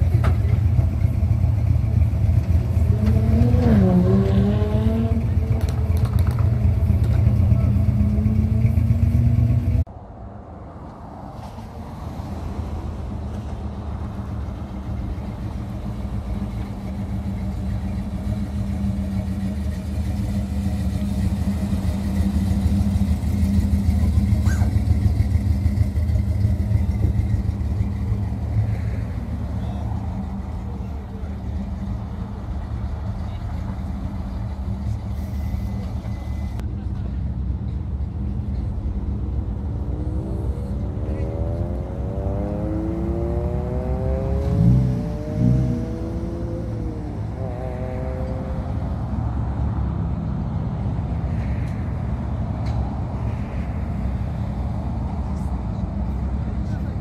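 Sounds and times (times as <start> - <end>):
engine revving: 2.4 - 9.9, 40.0 - 48.9
car engine running: 13.4 - 36.9.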